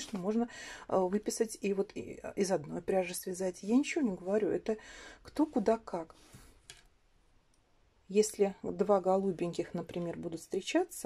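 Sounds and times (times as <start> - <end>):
faint breath-like hiss: 6.1 - 6.7.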